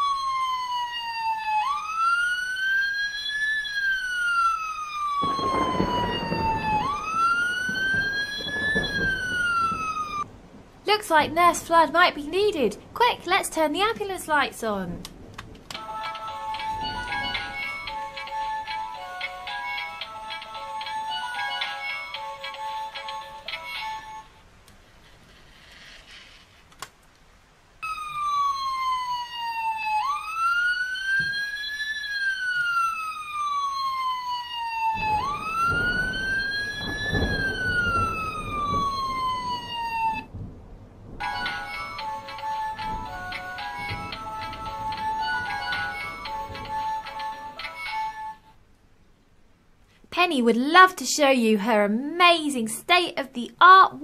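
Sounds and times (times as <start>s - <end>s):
toy siren rising and falling: 0.0s - 10.2s, 15.7s - 24.3s, 27.8s - 40.3s, 41.2s - 48.4s.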